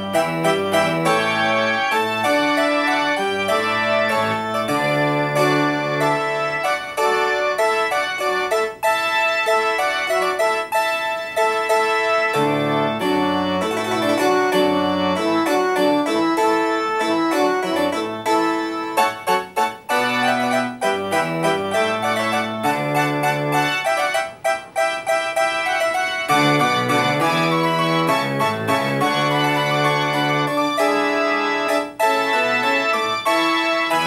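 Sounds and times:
piano music: 0:00.0 - 0:34.0.

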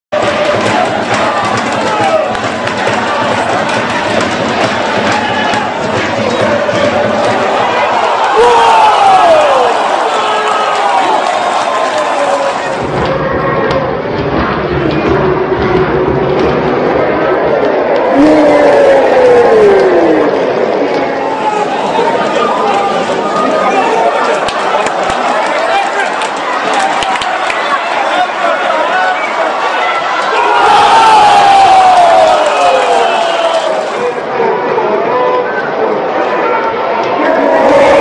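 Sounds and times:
crowd shouting and chanting: 0:00.1 - 0:38.0.

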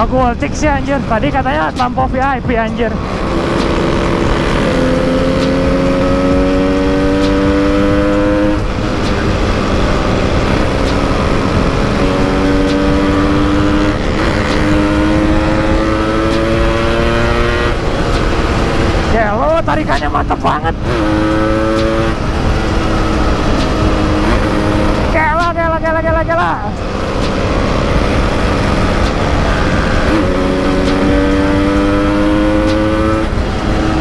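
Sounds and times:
motorcycle engine accelerating: 0:00.0 - 0:34.0.

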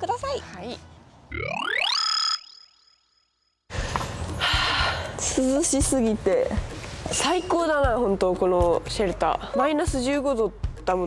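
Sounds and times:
outdoor background noise: 0:00.0 - 0:02.0.

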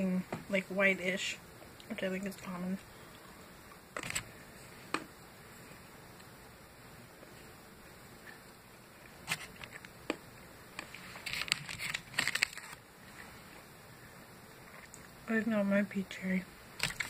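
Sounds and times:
wrapper crinkling: 0:10.8 - 0:12.8.

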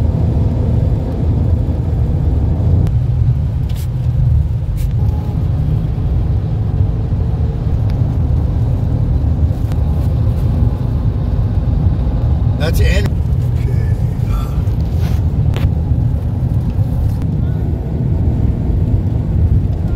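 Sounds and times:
car cabin road rumble: 0:00.0 - 0:19.9.

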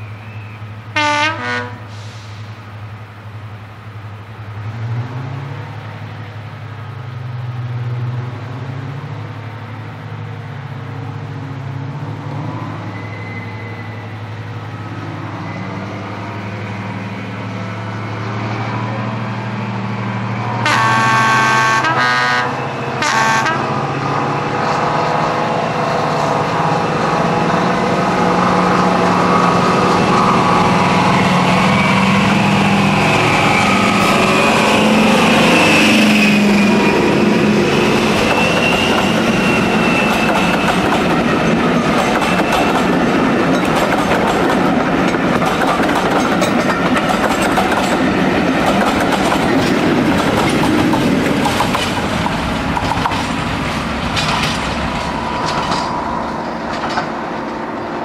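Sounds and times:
diesel locomotive passing: 0:00.0 - 0:58.0
high engine whine: 0:01.9 - 0:58.0
wheels clattering over rail joints: 0:38.0 - 0:58.0.

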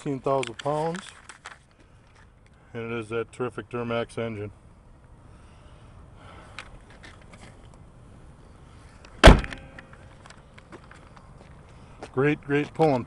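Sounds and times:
truck hood slamming shut: 0:09.2 - 0:09.8.

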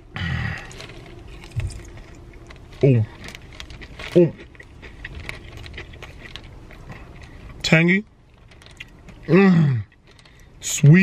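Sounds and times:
chewing crispy fried chicken: 0:00.2 - 0:11.0.

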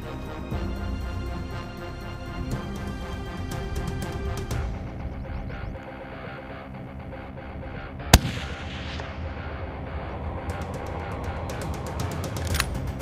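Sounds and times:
background music: 0:00.0 - 0:13.0
rifle shot: 0:08.1 - 0:09.6.

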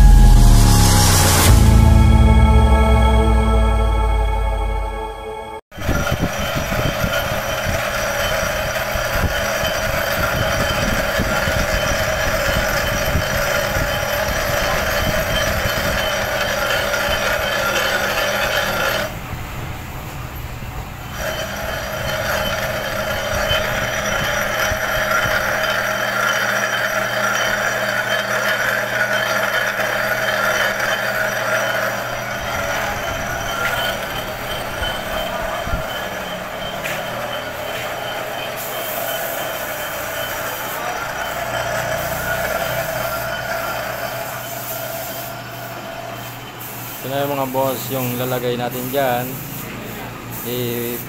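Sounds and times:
lathe machine hum: 0:00.0 - 0:47.8
hissing metal cutting: 0:05.8 - 0:19.2, 0:21.0 - 0:51.0.

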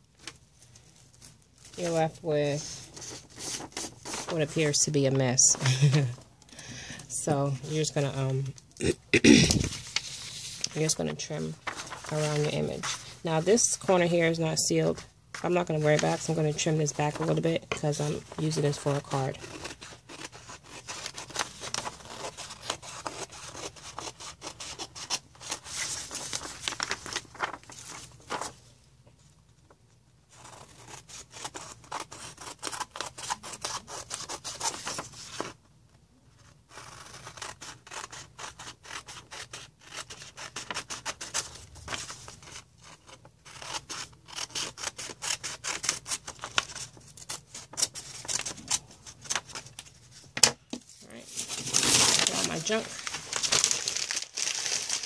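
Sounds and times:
plastic wrap crinkling: 0:26.2 - 0:28.6, 0:50.9 - 0:55.0.

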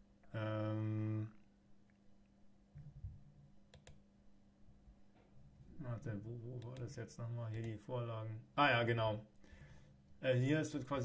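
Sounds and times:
computer mouse clicks: 0:03.7 - 0:04.0, 0:07.5 - 0:07.8.

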